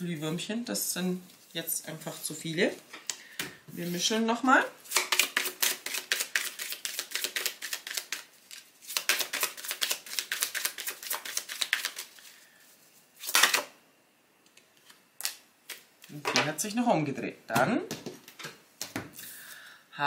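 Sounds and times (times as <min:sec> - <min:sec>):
playing cards being shuffled: 0:04.9 - 0:12.3
rustle of cards: 0:05.0 - 0:13.6.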